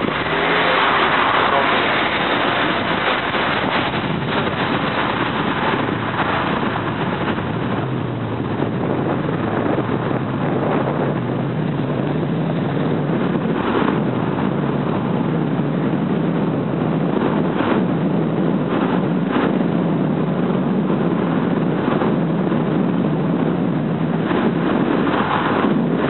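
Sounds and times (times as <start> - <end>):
low engine hum: 0.0 - 26.0
road and wind noise: 0.0 - 26.0.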